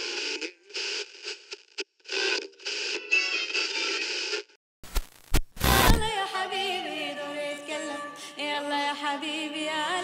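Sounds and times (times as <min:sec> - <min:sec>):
tinny hissy radio: 0:02.1 - 0:06.1.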